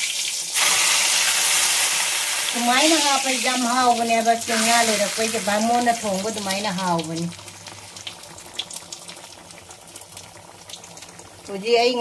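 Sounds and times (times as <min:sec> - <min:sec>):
curry simmering with hiss and pops: 0:00.0 - 0:12.0.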